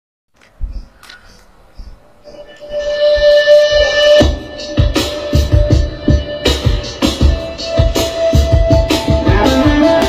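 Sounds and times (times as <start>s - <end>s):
electric guitar through amplifier: 0.5s - 10.0s.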